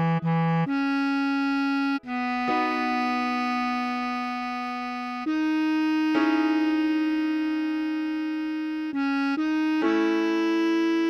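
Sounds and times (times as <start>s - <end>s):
bass clarinet long note: 0.0s - 11.0s.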